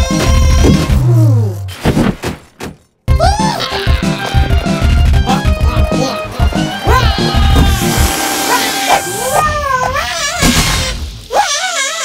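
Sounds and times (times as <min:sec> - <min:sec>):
cartoon character high-pitched cry: 0:09.0 - 0:12.0.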